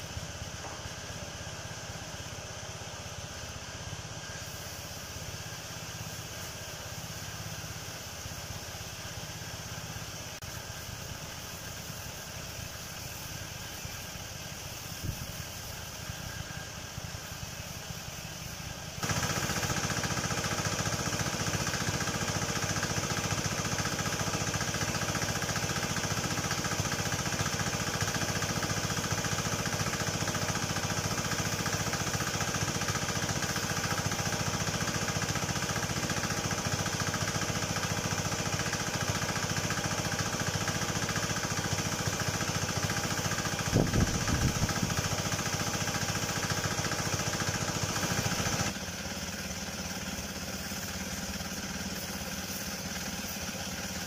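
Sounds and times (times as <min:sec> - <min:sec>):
spray jet hissing: 0:00.0 - 0:54.0
sprayer pump running: 0:00.0 - 0:54.0.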